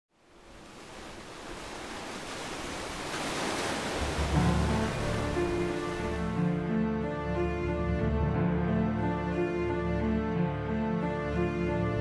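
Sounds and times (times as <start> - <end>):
rushing wash of noise: 0.4 - 6.8
low sustained music notes: 4.0 - 12.0.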